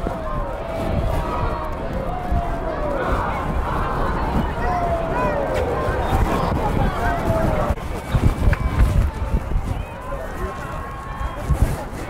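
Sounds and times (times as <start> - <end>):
distant voices: 0.0 - 12.0
low rumble on microphone: 0.0 - 12.0.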